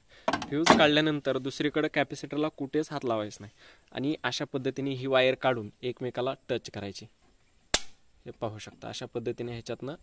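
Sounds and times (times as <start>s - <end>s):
electric spark crack: 7.7s - 8.0s.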